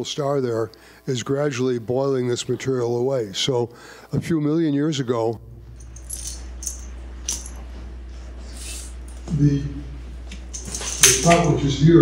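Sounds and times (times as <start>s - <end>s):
sound system hum: 5.4s - 12.0s
light clicks with jingle: 10.3s - 11.6s.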